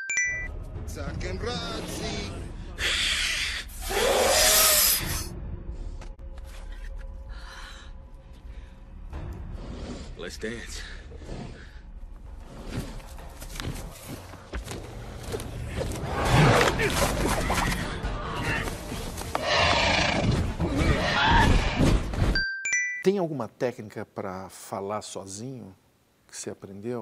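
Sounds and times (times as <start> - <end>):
creature screeching: 2.8 - 5.2, 19.4 - 21.8.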